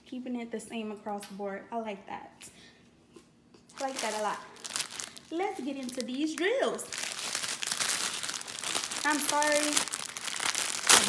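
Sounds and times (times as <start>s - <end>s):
plastic bags crinkling: 3.7s - 11.0s.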